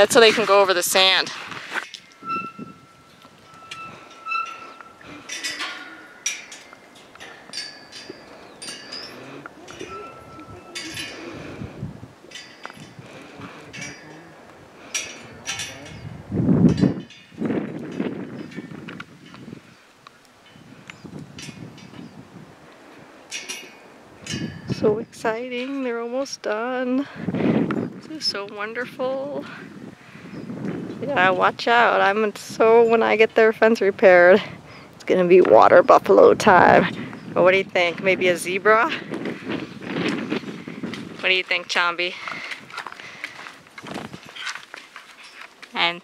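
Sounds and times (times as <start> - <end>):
metal pipe ringing: 0.0 - 19.4, 23.3 - 26.2
metal panels clanking: 2.0 - 11.7.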